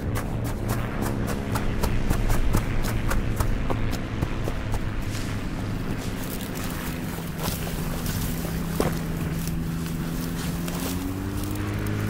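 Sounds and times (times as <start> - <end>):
dry cornstalks crackling: 0.0 - 12.0
propeller plane droning: 0.0 - 12.0.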